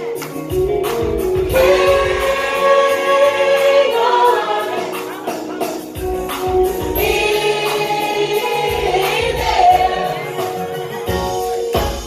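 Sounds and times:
high percussion beat: 0.0s - 12.0s
choir singing gospel: 0.8s - 12.0s.

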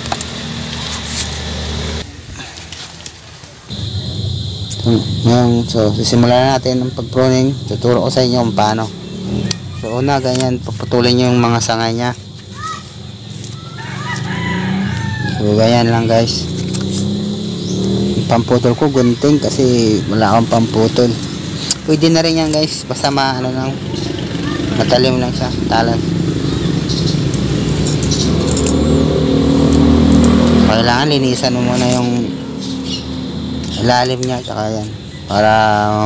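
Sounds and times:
vehicle engine humming: 0.0s - 36.0s
steady low hum: 3.7s - 9.4s
chickens calling: 8.6s - 36.0s.

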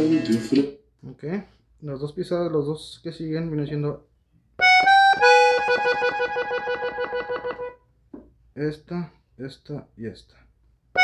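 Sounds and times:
button accordion treble notes: 4.6s - 7.8s.

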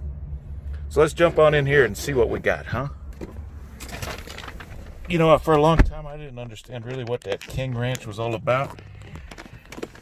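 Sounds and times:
steady low rumble: 0.0s - 10.0s
rustling and shuffling: 3.1s - 5.8s, 6.4s - 10.0s.

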